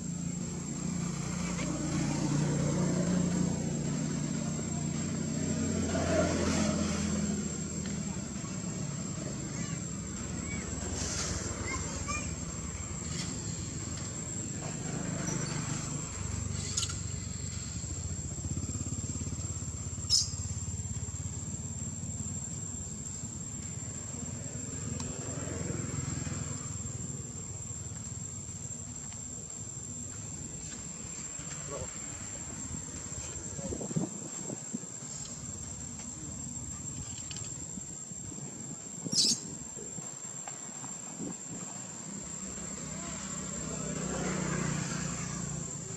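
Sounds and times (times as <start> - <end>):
high-pitched insect drone: 0.0 - 45.9
small engine idling: 13.4 - 24.8.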